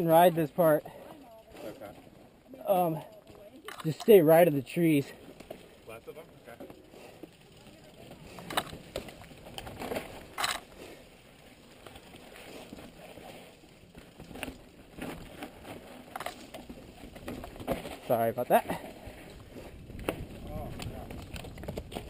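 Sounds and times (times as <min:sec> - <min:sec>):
bike clattering over rocks: 0:00.0 - 0:22.0
bike tyres crunching over stones: 0:00.0 - 0:22.0.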